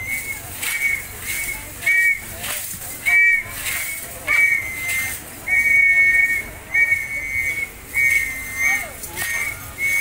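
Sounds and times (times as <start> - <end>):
two-note whistle blasts: 0.0 - 10.0.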